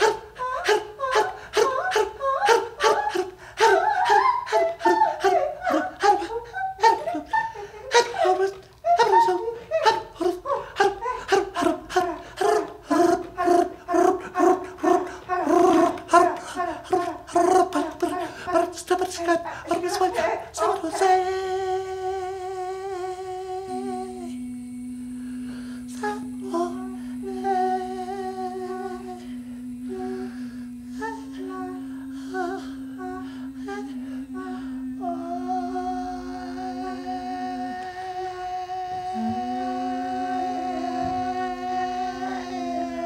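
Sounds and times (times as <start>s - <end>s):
low hummed drone: 21.0s - 43.0s
person singing held notes: 23.5s - 43.0s.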